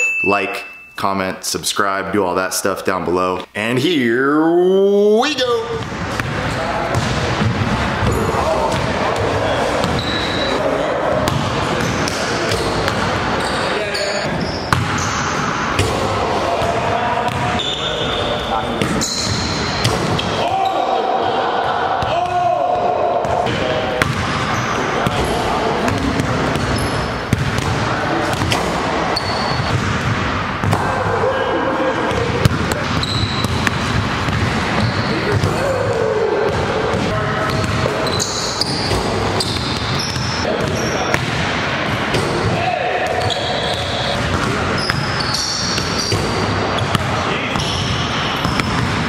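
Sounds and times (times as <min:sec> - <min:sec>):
basketballs bouncing on hardwood: 0:05.8 - 0:10.0, 0:11.3 - 0:13.2, 0:14.4 - 0:15.2, 0:23.2 - 0:28.6, 0:29.5 - 0:30.9, 0:32.0 - 0:49.0
background chatter: 0:05.8 - 0:22.3, 0:23.0 - 0:33.6.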